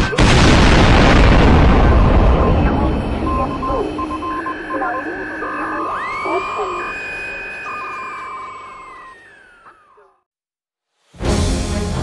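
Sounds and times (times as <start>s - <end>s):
explosion rumble: 0.0s - 4.4s
garbled radio voice: 2.2s - 8.0s
alternating two-pitch beeps: 2.3s - 9.9s
short on-off beeps: 3.2s - 8.7s
rising whistling tone: 3.3s - 10.1s.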